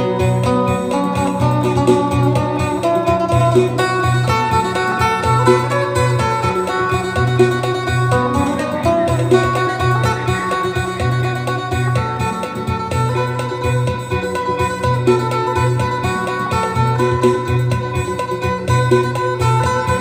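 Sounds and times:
plucked lute melody: 0.0 - 20.0.

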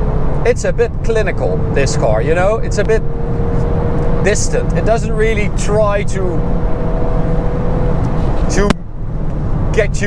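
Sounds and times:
car interior rumble at speed: 0.0 - 10.0.

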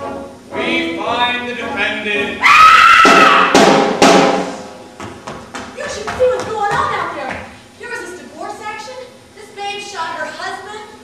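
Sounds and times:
drum and cymbal hits: 2.9 - 5.8.

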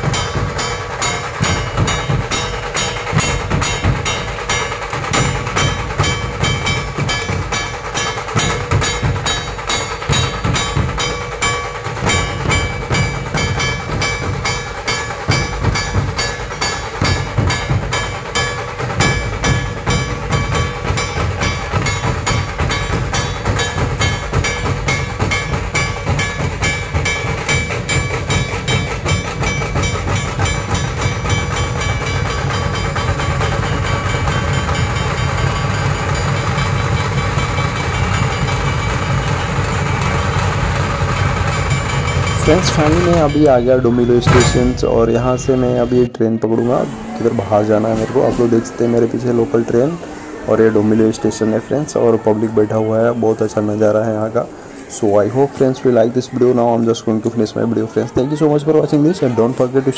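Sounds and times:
barrel drums beating fast rhythm: 0.0 - 50.0.

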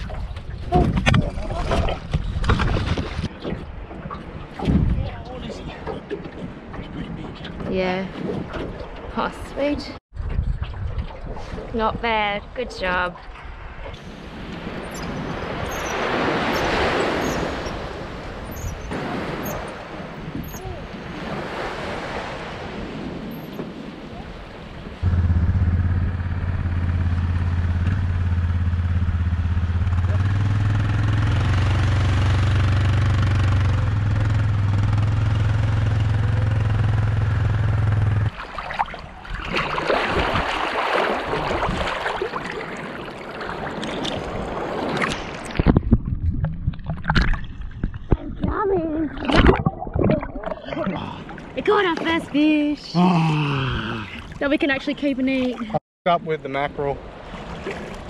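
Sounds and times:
small waves washing on sand: 14.0 - 25.0, 38.3 - 45.6, 56.5 - 58.0
quad bike engine running: 25.0 - 38.3.

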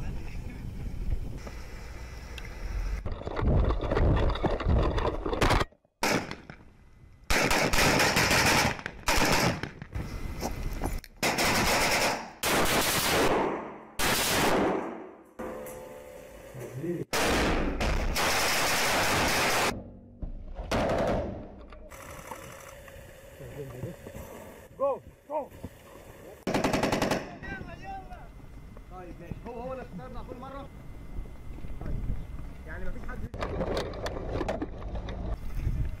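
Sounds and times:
assault rifles automatic bursts: 7.3 - 9.8, 11.2 - 13.4, 18.1 - 19.8, 26.5 - 27.4
wind buffeting microphone: 35.3 - 36.0.

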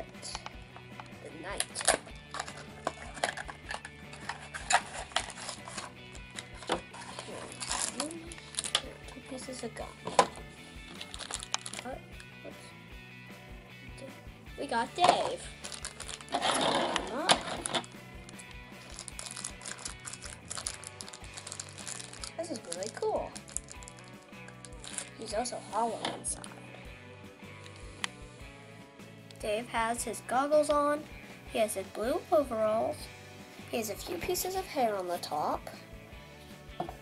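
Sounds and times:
soft background music: 0.0 - 37.0
foil packet crinkling: 1.6 - 8.9, 10.9 - 11.9, 15.2 - 25.2.

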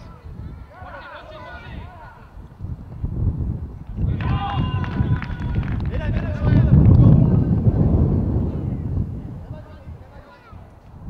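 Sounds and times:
children shouting: 0.0 - 2.4
low rumbling noise: 1.8 - 10.2.

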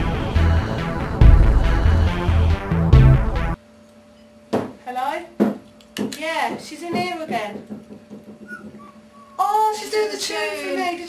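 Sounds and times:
electronic music: 0.0 - 3.6
people talking: 6.2 - 7.6, 9.4 - 11.0.

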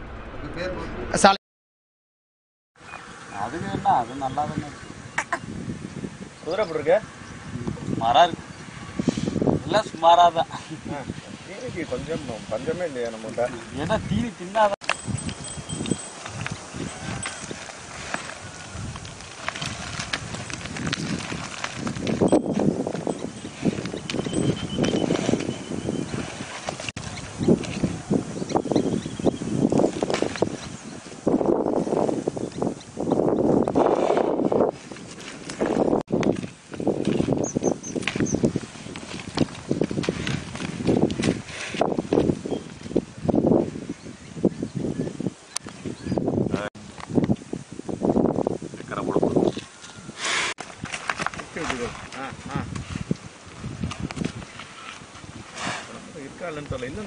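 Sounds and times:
bull hooves on gravel: 14.8 - 30.8, 34.7 - 43.0
faint high ringing tone: 14.9 - 18.4, 22.3 - 26.1
bull horns thudding into soil: 50.6 - 52.2.

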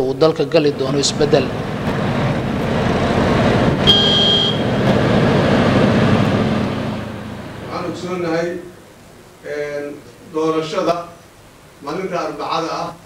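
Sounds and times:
truck and cars passing: 0.4 - 8.6
brief high-pitched tone: 3.8 - 4.7.

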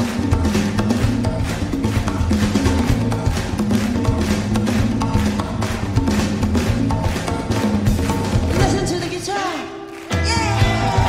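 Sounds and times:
congas and drums groove: 0.0 - 9.4.

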